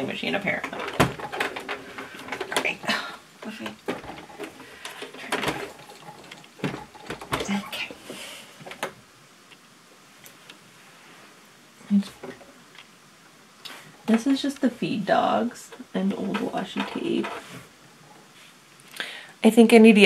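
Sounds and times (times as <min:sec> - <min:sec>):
sewing machine clicks and rattles: 0:00.0 - 0:08.9.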